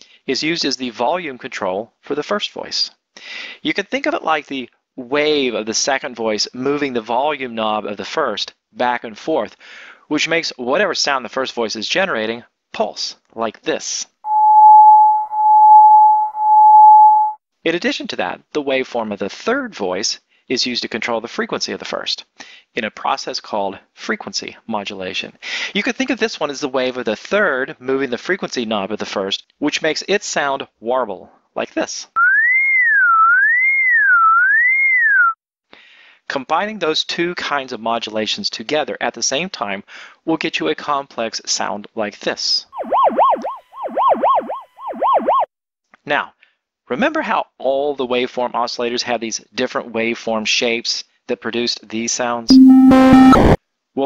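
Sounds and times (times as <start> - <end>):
pulsing synthesizer sine tone: 14.3 - 17.4, 42.8 - 45.4, 52.5 - 53.6.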